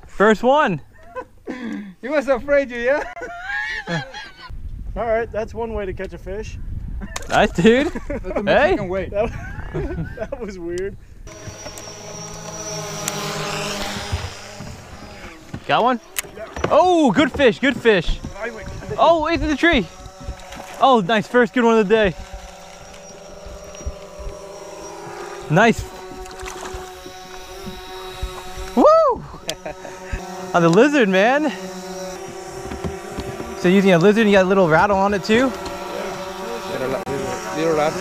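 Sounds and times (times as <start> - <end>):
boat motor humming: 11.2 - 38.0
thin high whine: 11.3 - 38.0
man whooping: 28.8 - 29.6.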